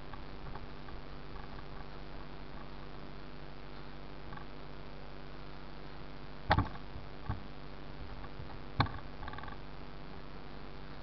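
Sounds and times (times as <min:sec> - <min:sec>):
steady low hum: 0:00.0 - 0:11.0
sharp knocks: 0:06.5 - 0:07.4.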